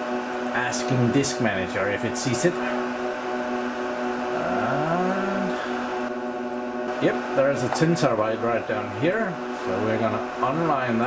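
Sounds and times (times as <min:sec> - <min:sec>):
server cooling fans whirring: 0:00.0 - 0:11.0.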